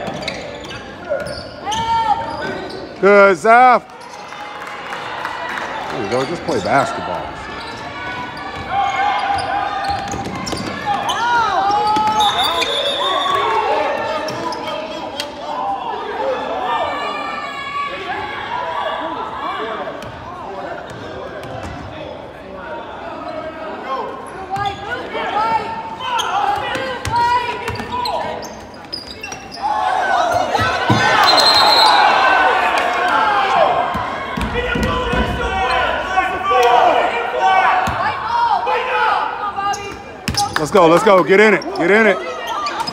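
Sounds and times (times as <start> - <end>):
voices of players and spectators: 0.0 - 42.9.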